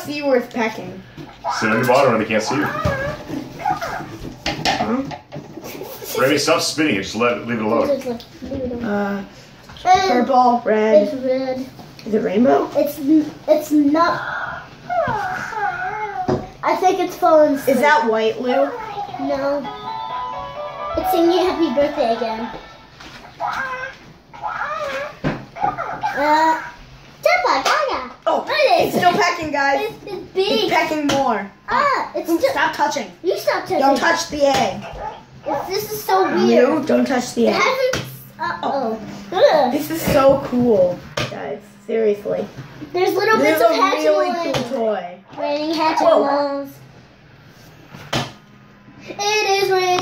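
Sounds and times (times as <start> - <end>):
low room noise: 0.0 - 50.0.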